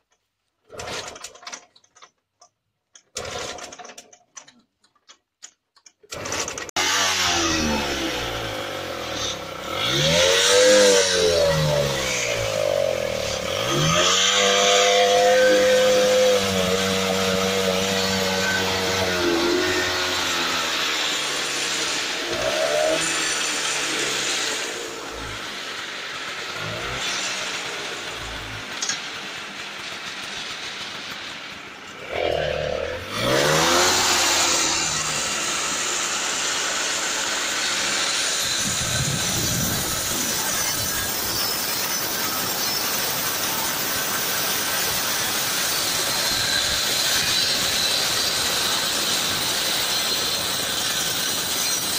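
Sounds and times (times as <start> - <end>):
scooter engine revving: 3.1 - 3.9, 6.1 - 51.8.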